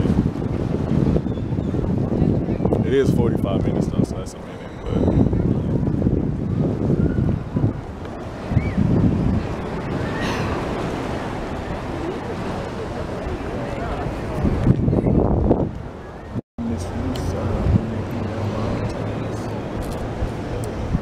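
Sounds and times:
wind buffeting microphone: 0.0s - 21.0s
sea waves washing: 5.7s - 21.0s
indistinct voices: 16.6s - 20.7s.

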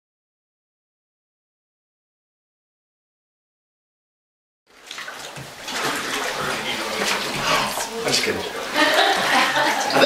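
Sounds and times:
water sloshing in a tank: 4.7s - 10.0s.

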